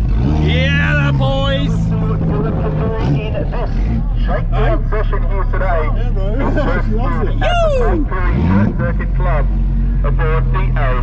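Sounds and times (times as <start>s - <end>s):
car engine droning: 0.0s - 11.0s
excited voices shouting: 7.1s - 8.1s.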